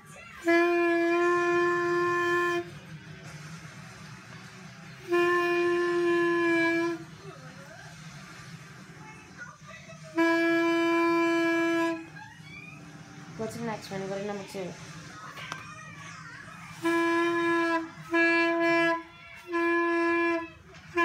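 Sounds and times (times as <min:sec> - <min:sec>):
clarinet held notes: 0:00.4 - 0:02.7, 0:05.0 - 0:07.1, 0:10.1 - 0:12.1, 0:16.8 - 0:21.0.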